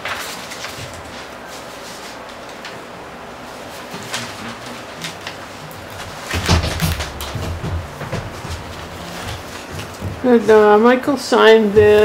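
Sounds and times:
papers being handled: 0:00.0 - 0:10.7
low knocks and thumps: 0:05.8 - 0:10.5.

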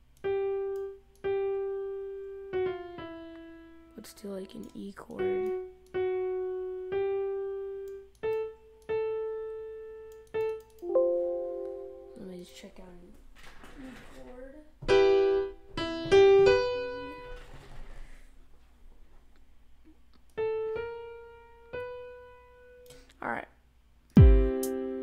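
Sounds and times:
grand piano notes and chords: 0:00.2 - 0:13.1, 0:14.8 - 0:17.4, 0:24.2 - 0:25.0.

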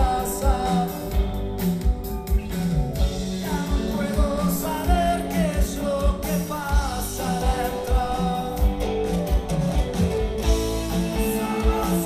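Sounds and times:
male lead vocal: 0:00.0 - 0:01.6, 0:03.1 - 0:09.4, 0:10.6 - 0:12.0
drums: 0:00.0 - 0:12.0
electric guitars: 0:00.0 - 0:12.0
keyboard: 0:00.0 - 0:12.0.

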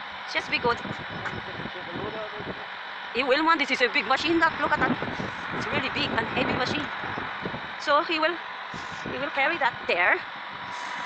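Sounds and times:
lorry engine running: 0:00.0 - 0:11.0.

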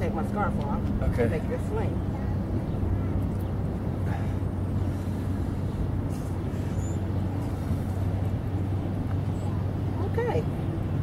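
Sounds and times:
constant low hum: 0:00.0 - 0:11.0
low urban rumble: 0:00.0 - 0:11.0.

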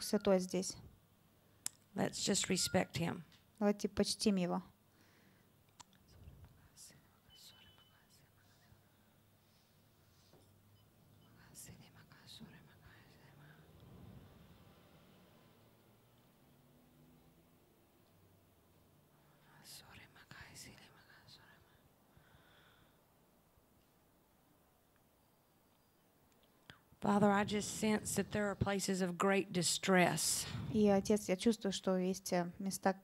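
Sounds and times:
faint whispering: 0:06.0 - 0:09.8, 0:11.1 - 0:13.8, 0:19.1 - 0:21.9.

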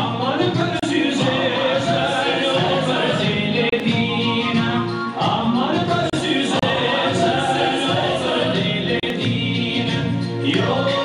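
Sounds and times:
group of voices singing: 0:00.0 - 0:11.0
low musical accompaniment: 0:00.0 - 0:11.0.

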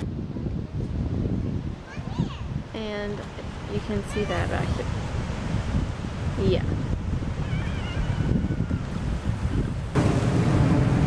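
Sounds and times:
wind rumble on microphone: 0:00.0 - 0:11.0
ocean surf breaking: 0:01.7 - 0:11.0.

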